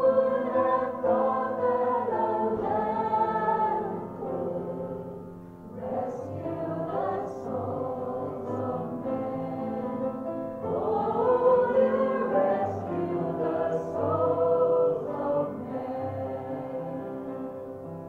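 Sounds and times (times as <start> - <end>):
girls singing a worship song: 0.0 - 17.5.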